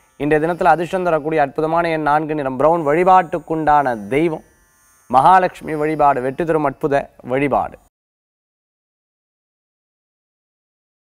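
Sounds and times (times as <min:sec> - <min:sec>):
man speaking: 0:00.2 - 0:04.4, 0:05.1 - 0:07.9.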